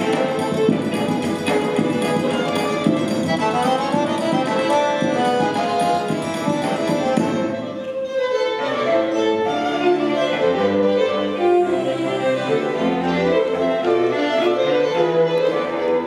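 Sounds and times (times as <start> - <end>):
full band sound: 0.0 - 16.0
low cello line: 0.0 - 16.0
string quartet playing slow bowed notes: 0.0 - 16.0.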